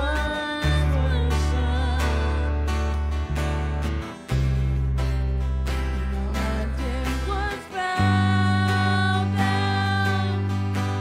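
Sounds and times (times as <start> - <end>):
person singing: 0.0 - 2.9, 6.0 - 11.0
strummed guitars: 0.0 - 11.0.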